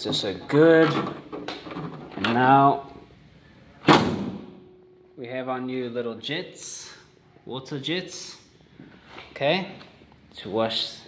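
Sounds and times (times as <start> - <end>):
car bonnet slamming shut: 3.8 - 4.6.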